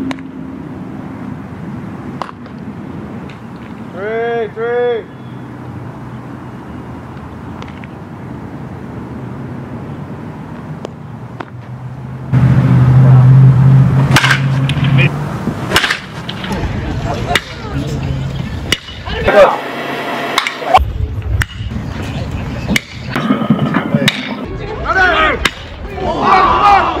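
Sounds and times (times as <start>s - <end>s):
outdoor background noise: 0.0s - 27.0s
low rumble: 12.3s - 15.6s
sharp cracks: 15.7s - 16.4s
voices shouting: 24.4s - 27.0s.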